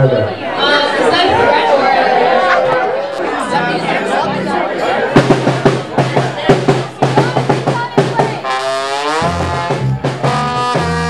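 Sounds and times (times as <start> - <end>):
low held notes: 0.0 - 7.0
voices talking and calling out: 0.0 - 9.0.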